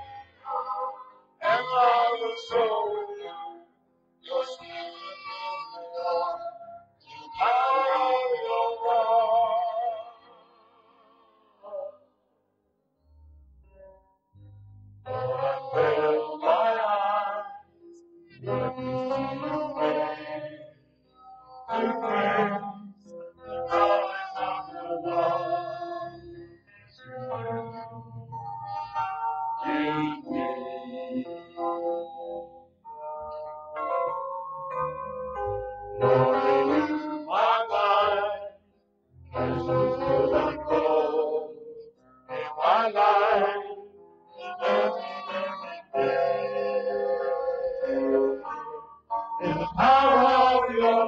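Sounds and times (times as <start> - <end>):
person singing: 0.0 - 3.5, 4.2 - 12.0, 14.9 - 17.6, 18.3 - 20.7, 21.6 - 29.0, 29.6 - 31.8, 36.0 - 38.5, 39.4 - 48.8, 49.4 - 51.0.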